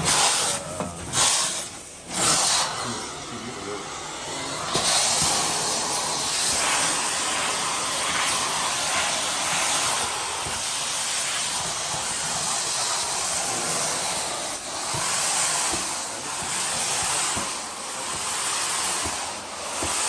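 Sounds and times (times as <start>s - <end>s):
extraction wand hissing on tile: 0.0s - 20.0s.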